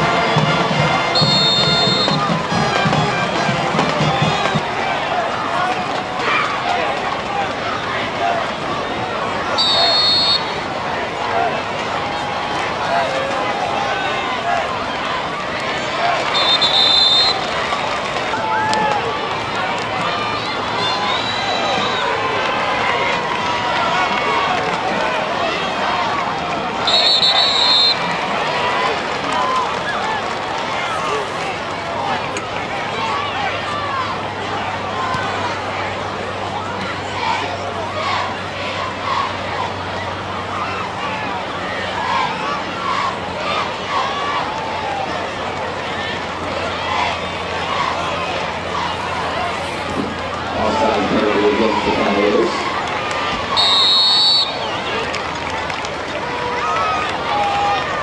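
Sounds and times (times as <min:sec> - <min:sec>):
crowd chatter and calls: 0:00.0 - 0:58.0
referee whistle blasts: 0:01.1 - 0:02.3, 0:09.5 - 0:10.6, 0:16.3 - 0:17.5, 0:26.8 - 0:28.0, 0:53.5 - 0:54.8.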